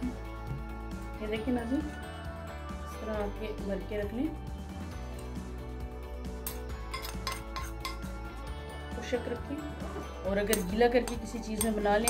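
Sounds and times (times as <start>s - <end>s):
metal spoon scraping ceramic plate: 6.5s - 8.1s, 10.5s - 12.0s.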